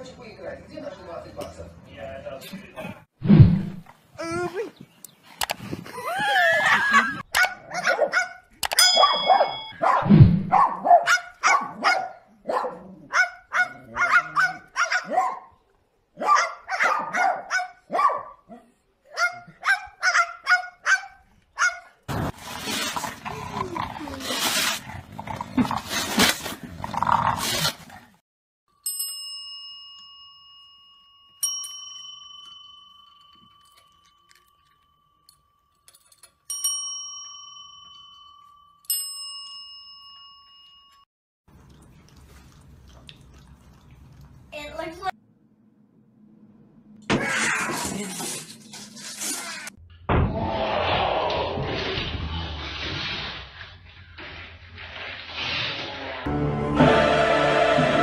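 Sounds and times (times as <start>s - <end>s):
dog yapping: 7.4s - 8.4s, 9.0s - 15.5s, 16.2s - 21.9s
small bell ringing: 8.7s - 9.8s, 28.7s - 41.1s.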